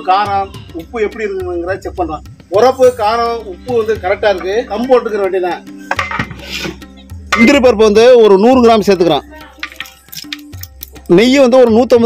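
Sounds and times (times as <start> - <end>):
man talking: 0.0 - 5.7, 7.4 - 9.3, 11.1 - 12.0
background music: 0.0 - 12.0.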